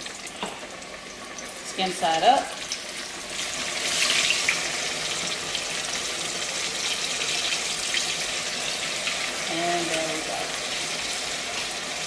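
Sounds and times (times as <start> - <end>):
chicken sizzling in hot oil: 0.0 - 12.0.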